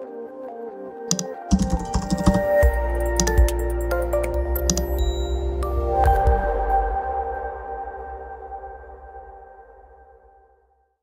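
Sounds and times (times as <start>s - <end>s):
electronic background music: 0.0s - 9.8s
keyboard key clicks: 1.1s - 2.6s, 3.2s - 3.6s, 4.7s - 5.0s.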